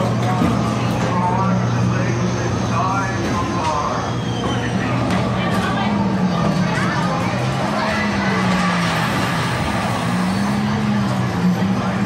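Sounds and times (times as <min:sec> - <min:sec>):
ride car rumbling along track: 0:00.0 - 0:12.0.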